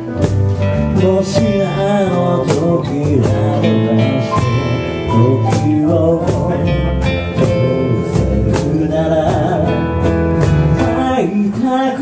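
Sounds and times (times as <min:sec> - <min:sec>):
acoustic guitars strummed: 0:00.0 - 0:12.0
person singing: 0:00.0 - 0:12.0
upright bass: 0:00.0 - 0:12.0.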